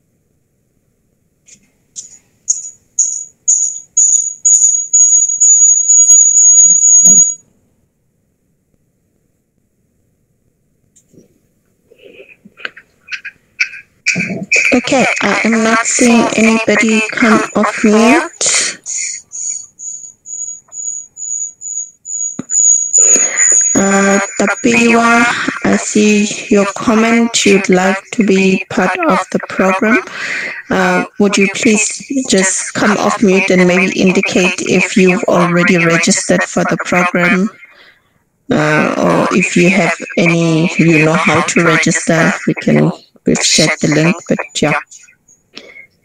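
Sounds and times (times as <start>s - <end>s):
high-pitched beeps: 2.5s - 7.4s, 18.9s - 28.1s
insect chirping and trilling: 2.5s - 7.4s, 19.2s - 25.1s
person speaking: 12.0s - 19.7s, 22.4s - 37.9s, 38.5s - 45.8s.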